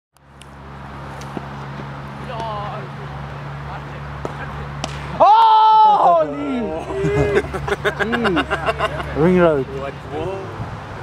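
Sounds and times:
man shouting: 5.2s - 7.4s.

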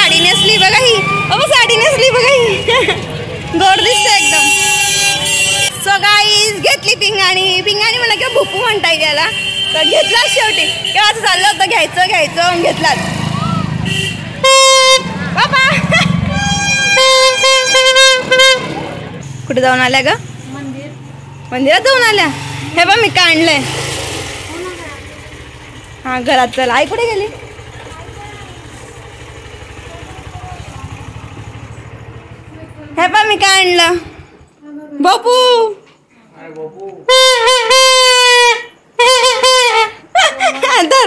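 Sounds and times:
vehicle engine running: 0.0s - 9.3s, 10.1s - 34.6s
voices: 0.0s - 41.0s
horn toot: 3.6s - 5.9s, 13.4s - 19.2s, 37.1s - 40.1s.

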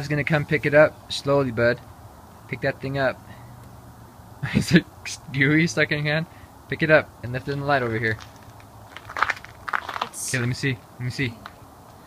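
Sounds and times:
person speaking: 4.4s - 8.4s, 9.9s - 11.5s
footsteps scuffing: 7.8s - 10.3s.

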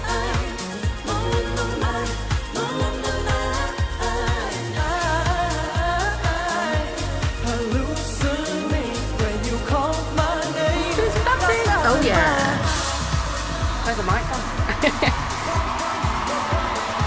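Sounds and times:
backing vocals: 0.0s - 17.0s
electronic dance beat: 0.0s - 17.0s
woman singing lead vocal: 0.0s - 17.0s.

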